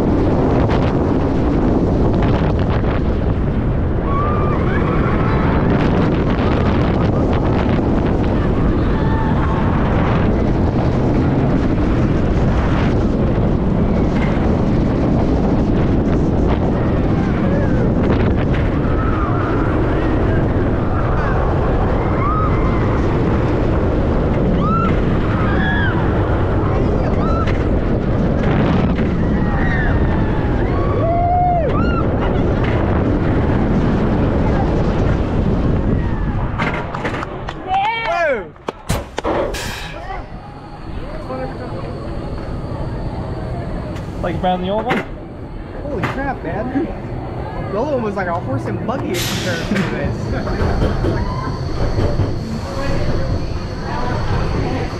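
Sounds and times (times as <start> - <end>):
roller coaster train rumble: 0.0 - 54.9
wind buffeting microphone: 0.0 - 54.9
riders screaming and whooping: 3.8 - 6.3, 8.1 - 10.6, 16.6 - 35.0, 35.8 - 36.7, 50.9 - 54.9.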